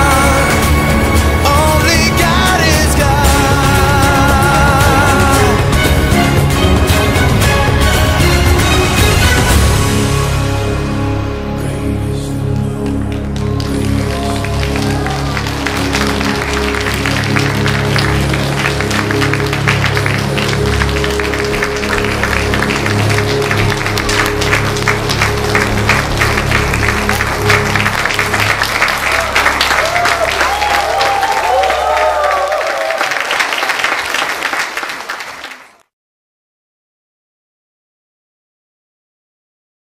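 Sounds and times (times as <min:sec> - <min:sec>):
audience applauding: 0:00.0 - 0:10.0, 0:12.6 - 0:35.9
backing music: 0:00.0 - 0:34.6
audience cheering: 0:13.4 - 0:35.8.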